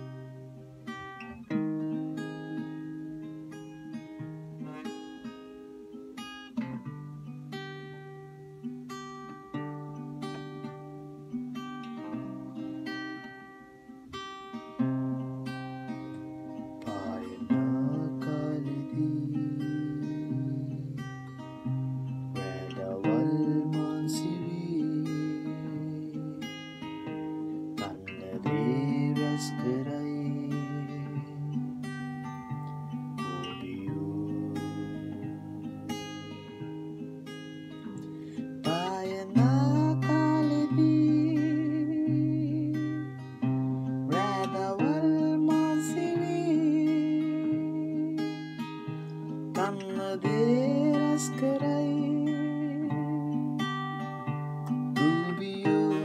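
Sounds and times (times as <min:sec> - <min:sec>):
solo acoustic guitar: 0:00.0 - 0:56.0.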